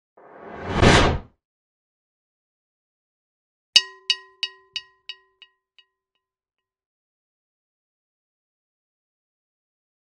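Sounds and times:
whoosh sound effect: 0:00.2 - 0:01.3.

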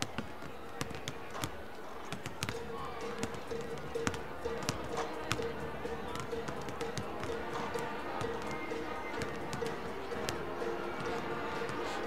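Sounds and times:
crowd chatter: 0:00.0 - 0:12.0
basketballs bouncing on wooden floor: 0:00.1 - 0:02.6, 0:03.2 - 0:05.5
music over speakers: 0:02.6 - 0:12.0.

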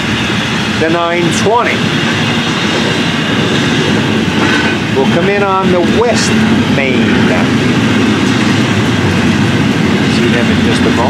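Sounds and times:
train wheels rolling on rails: 0:00.0 - 0:11.0.

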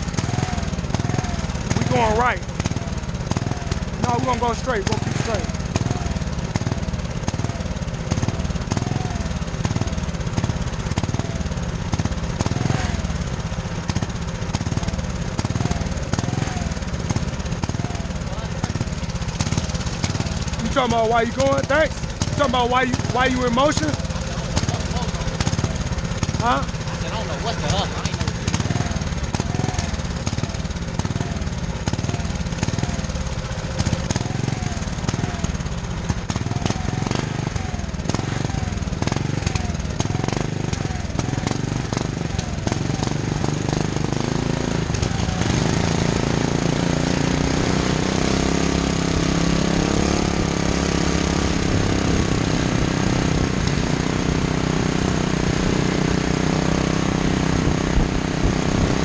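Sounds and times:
small gas engine running: 0:00.0 - 0:59.0.

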